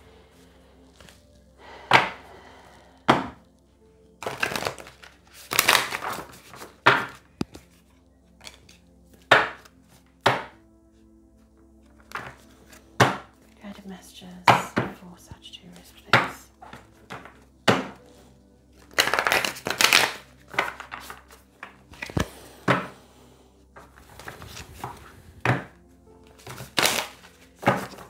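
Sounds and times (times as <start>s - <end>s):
cards rustling: 4.2s - 10.0s, 11.8s - 13.0s, 18.7s - 23.0s, 23.8s - 28.0s
cards tapped on a tabletop: 10.3s - 10.6s, 24.2s - 25.7s.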